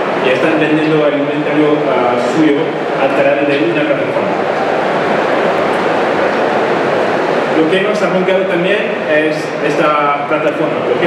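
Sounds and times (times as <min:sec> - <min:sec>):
loud steady background din: 0:00.0 - 0:11.0.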